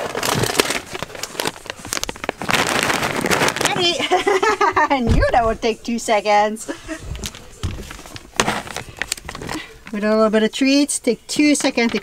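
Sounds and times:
plastic bag crinkling: 0.0s - 5.6s, 7.0s - 10.0s.

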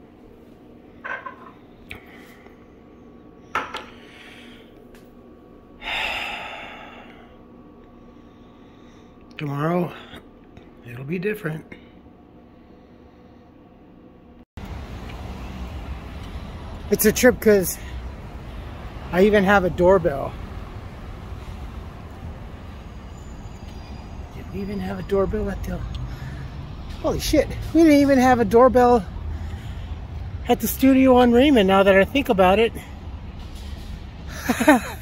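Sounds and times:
outdoor background rumble: 1.9s - 11.0s, 11.8s - 35.0s.

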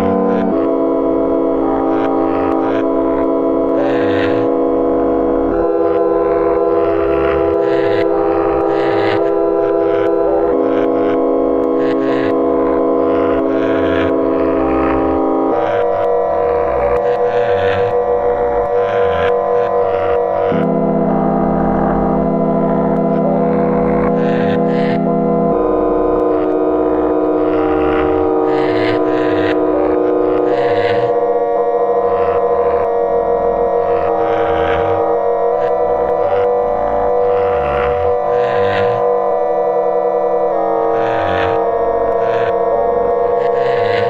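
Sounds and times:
low rumbling pulse: 0.0s - 44.0s
synthetic drone chords: 0.0s - 44.0s.

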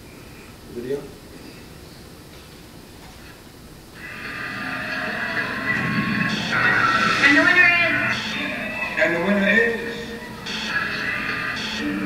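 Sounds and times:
music over loudspeakers: 4.0s - 12.0s.

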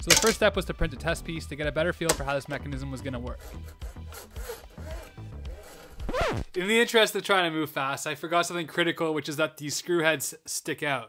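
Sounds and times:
background music: 0.0s - 6.8s
plastic slider scraping along track: 2.1s - 6.2s
screw heads rubbing on platform: 2.1s - 6.4s.

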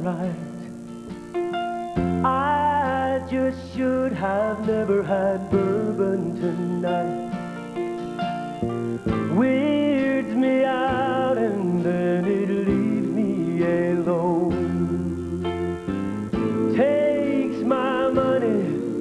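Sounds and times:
man singing with vibrato: 0.0s - 0.9s, 2.1s - 7.8s, 9.2s - 19.0s
country band with guitar: 0.0s - 19.0s.

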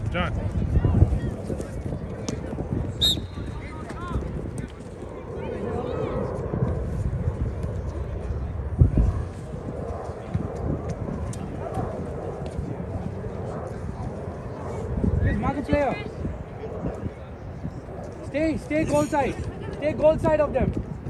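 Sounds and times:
wind rumble on microphone: 0.0s - 21.0s.

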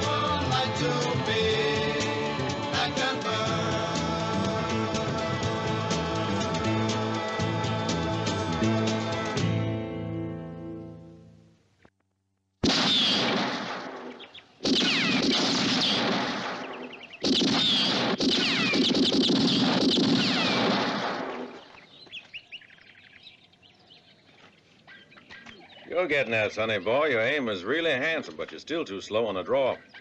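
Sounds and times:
orchestral rock music: 0.0s - 10.5s
revolver shots with ricochet whine: 12.6s - 21.7s
bird chirps: 14.1s - 14.6s, 16.5s - 17.9s, 21.2s - 27.8s, 28.9s - 30.0s.

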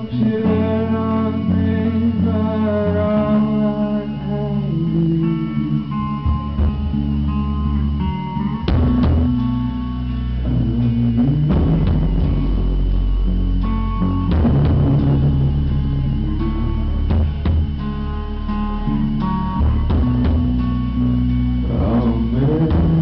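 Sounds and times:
live rock band playing: 0.0s - 23.0s.

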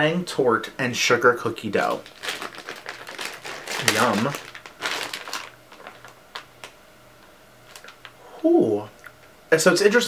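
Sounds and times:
plastic wrapping crinkling: 1.7s - 6.8s, 7.6s - 8.2s.

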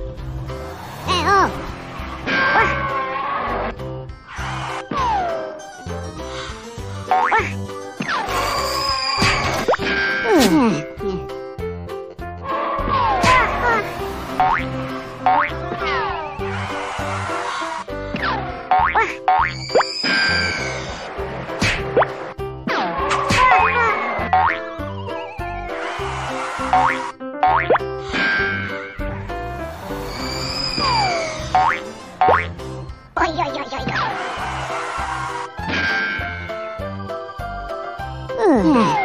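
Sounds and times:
cartoon background music: 0.0s - 39.0s.

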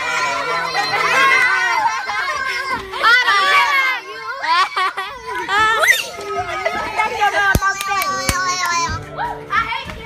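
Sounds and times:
children talking and calling out: 0.0s - 10.0s
music: 5.4s - 10.0s.

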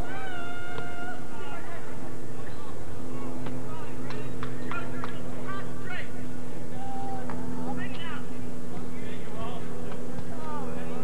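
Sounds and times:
low videotape hum: 0.0s - 11.0s
people shouting and calling out: 0.0s - 11.0s.

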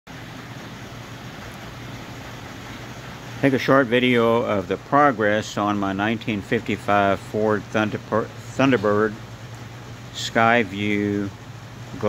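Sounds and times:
constant low hum: 0.1s - 12.0s
room hiss: 0.1s - 12.0s.

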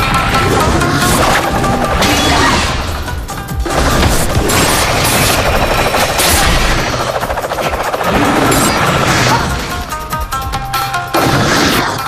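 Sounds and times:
dramatic score music: 0.0s - 12.0s
rapid crackling impact effects: 3.7s - 9.9s.

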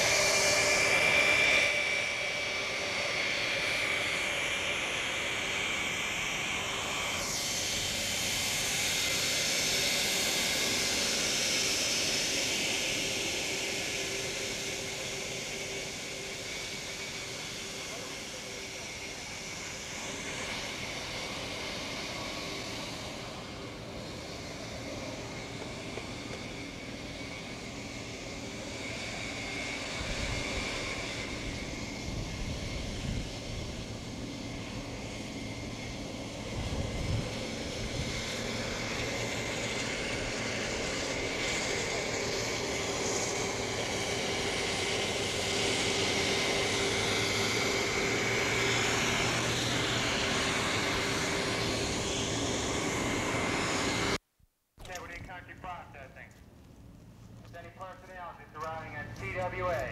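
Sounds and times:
jet engines whining: 0.0s - 54.2s, 54.8s - 59.9s.

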